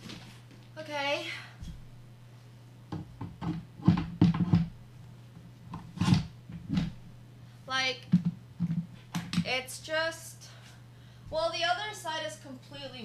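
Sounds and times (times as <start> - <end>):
chair parts knocking and clunking: 2.9 - 4.8, 5.7 - 7.0, 8.1 - 9.5.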